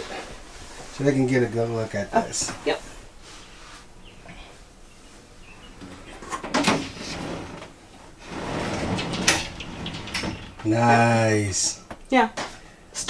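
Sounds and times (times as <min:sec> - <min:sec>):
glass shower door sliding: 0:06.3 - 0:10.9.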